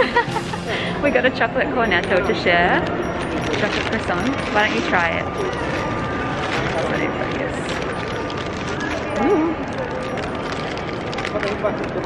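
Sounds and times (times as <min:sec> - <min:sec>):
indistinct voices hubbub: 0:00.0 - 0:12.0.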